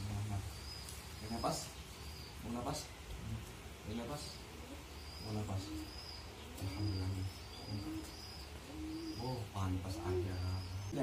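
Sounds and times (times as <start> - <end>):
dove cooing: 0.0 - 11.0
high bird chirps: 3.9 - 11.0.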